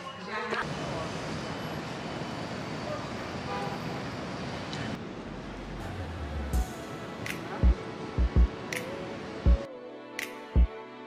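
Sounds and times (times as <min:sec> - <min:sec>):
road noise from passing cars: 0:00.3 - 0:09.5.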